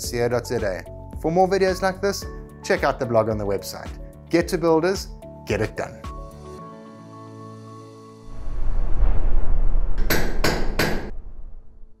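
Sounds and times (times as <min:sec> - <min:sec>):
sharp hammer-like knocks: 0:10.0 - 0:11.2.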